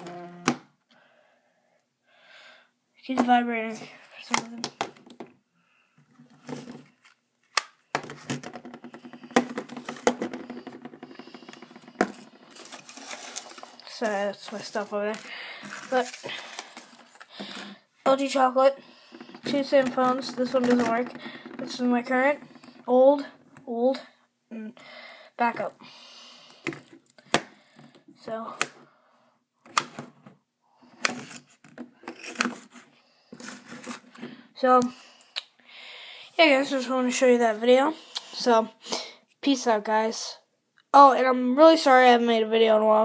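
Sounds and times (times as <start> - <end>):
phones rustling: 6.0 - 23.6.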